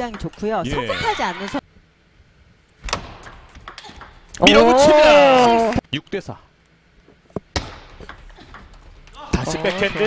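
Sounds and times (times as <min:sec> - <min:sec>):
table tennis ball clicks: 0:02.9 - 0:04.2.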